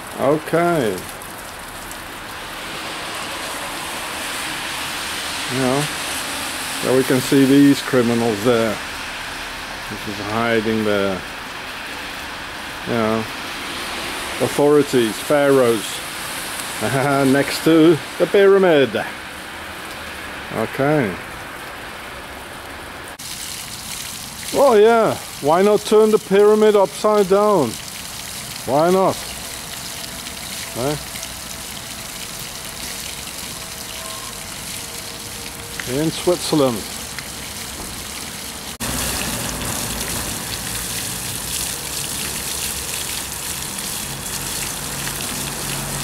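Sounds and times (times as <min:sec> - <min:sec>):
fountain water splashing into basin: 0:00.0 - 0:46.0.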